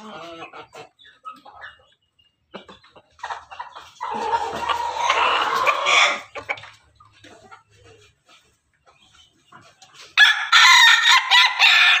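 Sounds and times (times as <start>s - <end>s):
rooster crowing: 10.2s - 12.0s.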